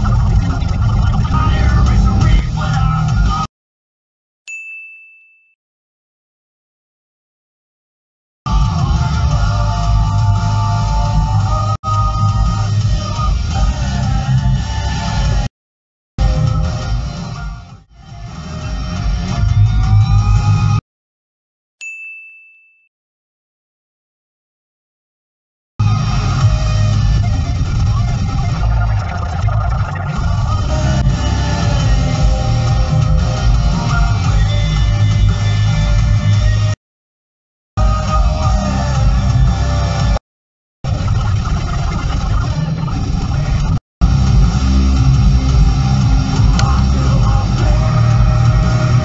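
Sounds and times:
background music: 1.2 - 3.5, 8.5 - 15.5, 30.2 - 36.8, 37.8 - 40.2, 44.0 - 49.0.

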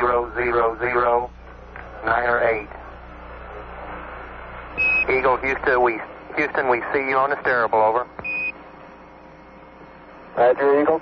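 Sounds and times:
radio hiss: 0.0 - 11.0.

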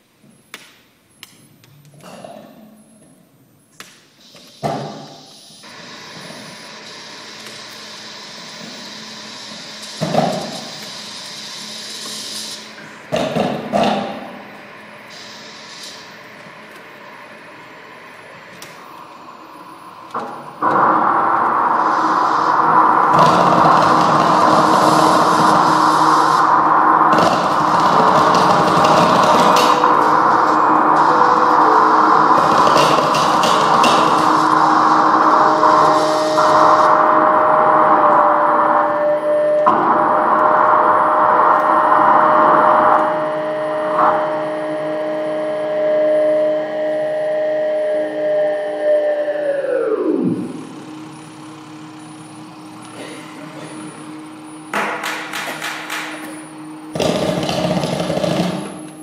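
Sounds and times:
noisy drone: 4.2 - 59.0
held steady tone: 14.2 - 54.8.

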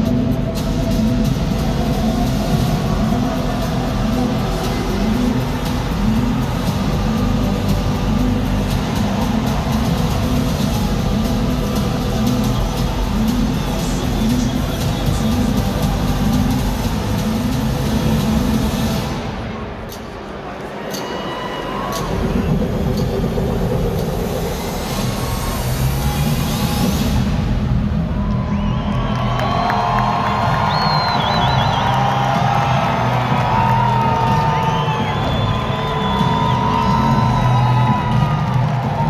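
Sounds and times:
large crowd cheering: 0.0 - 19.4, 20.2 - 23.2, 24.6 - 39.0
music with heavy bass line: 0.0 - 19.5, 22.0 - 39.0.

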